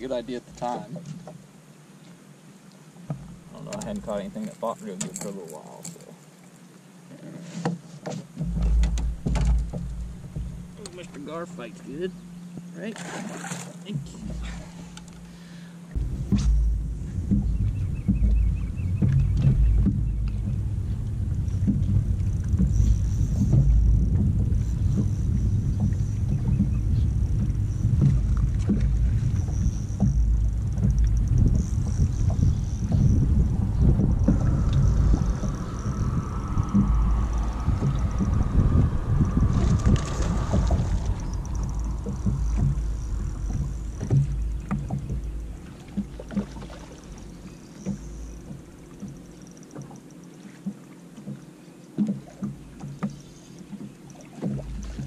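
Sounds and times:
wind and water rumble: 0.0s - 55.0s
water knocking against hull: 3.0s - 6.1s, 7.6s - 55.0s.

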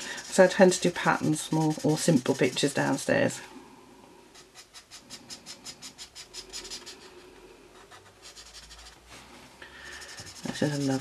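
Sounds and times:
marker nib scratching on paper: 0.0s - 3.0s, 4.4s - 7.2s, 7.8s - 9.0s, 9.8s - 11.0s.

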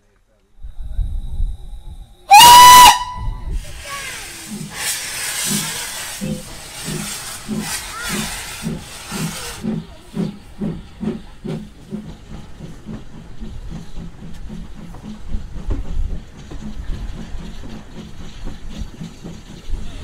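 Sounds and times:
steam engine exhaust beats: 0.6s - 20.0s
steam hissing: 0.8s - 20.0s
steam whistle blast: 2.3s - 3.5s.

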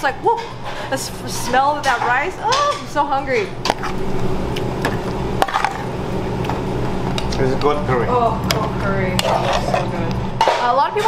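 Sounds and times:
kitchen equipment humming: 0.0s - 11.0s.

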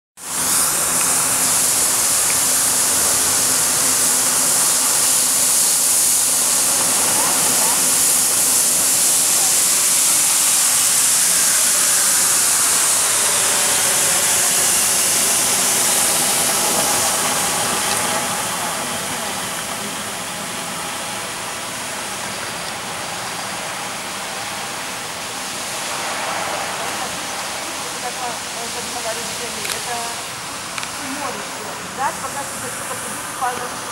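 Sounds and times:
floor scrubber hissing: 0.2s - 33.9s.

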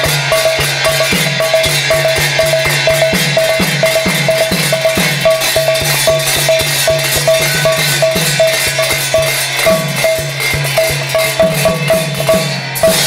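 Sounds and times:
barrel drum strokes: 0.0s - 13.0s
hand cymbals ringing: 0.0s - 13.0s.

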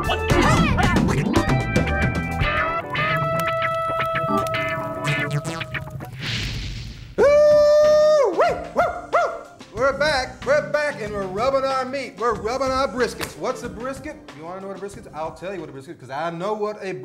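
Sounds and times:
tv theme music: 0.0s - 15.8s.

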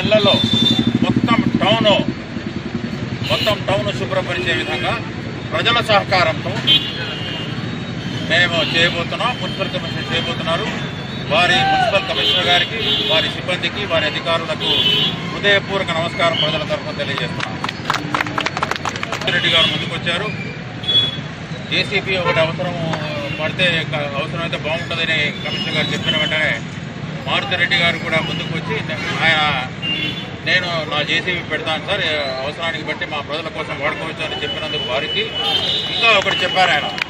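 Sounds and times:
background traffic noise: 0.0s - 37.0s
man speaking: 30.4s - 37.0s.

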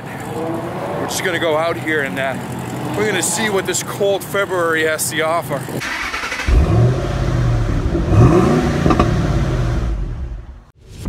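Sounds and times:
car engine revving: 0.1s - 4.5s, 5.6s - 10.7s.

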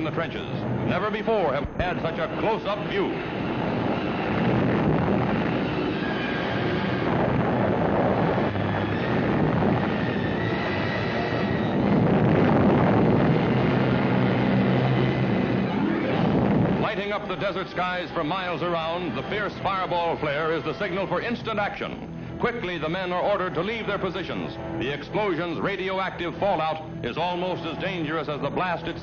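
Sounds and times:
explosion rumble: 0.0s - 18.2s.

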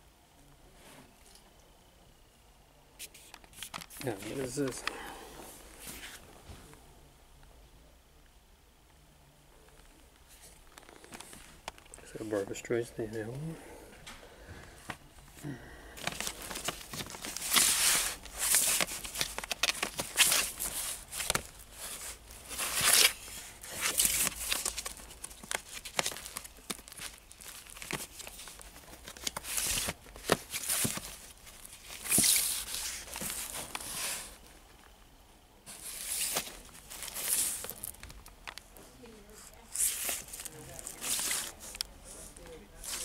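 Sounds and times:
cardboard record jackets scraping: 16.0s - 34.4s, 35.7s - 38.0s, 39.6s - 43.0s.

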